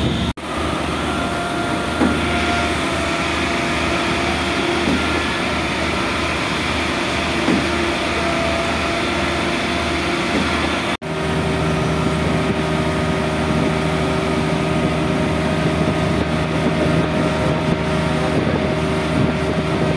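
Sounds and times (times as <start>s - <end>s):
truck engines droning: 0.0s - 19.9s.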